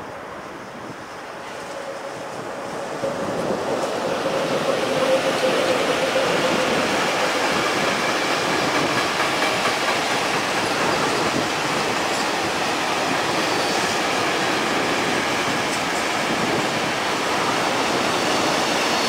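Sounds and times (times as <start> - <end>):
freight train wheels rumbling on rail: 0.0 - 19.0.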